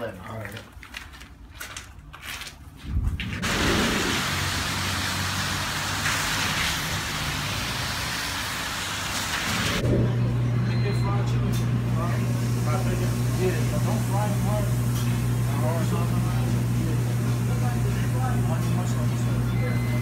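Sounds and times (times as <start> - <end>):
refrigerated counter humming: 0.0 - 20.0
street traffic hiss: 3.4 - 9.8.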